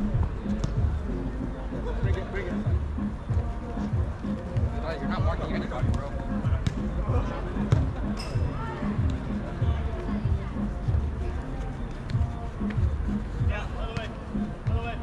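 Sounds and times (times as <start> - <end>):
music with steady beat: 0.0 - 15.0.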